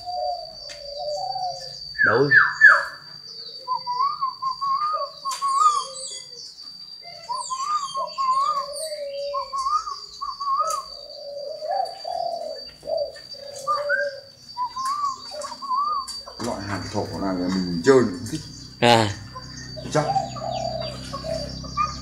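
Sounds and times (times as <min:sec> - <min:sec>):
doves cooing: 0:00.0 - 0:22.0
small birds chirping: 0:00.0 - 0:22.0.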